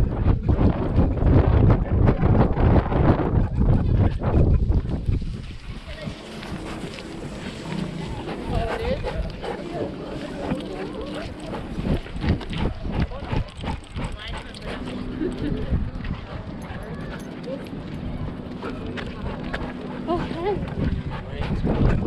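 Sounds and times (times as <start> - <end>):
indistinct voices: 0.0 - 22.0
camera rubbing and knocking: 0.3 - 9.4.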